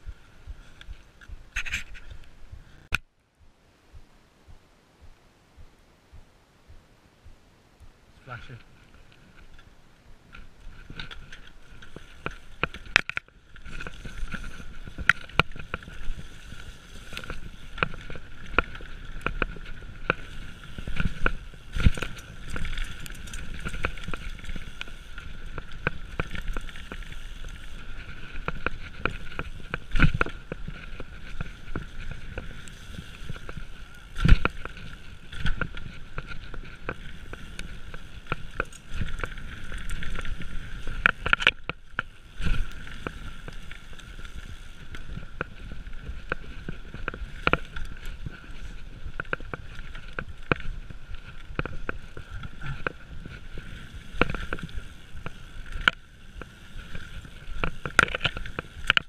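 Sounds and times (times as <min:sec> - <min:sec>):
wind noise: 0:00.0 - 0:59.0
tyres rolling on dirt: 0:08.2 - 0:59.0
bike rattling and knocking: 0:17.0 - 0:59.0.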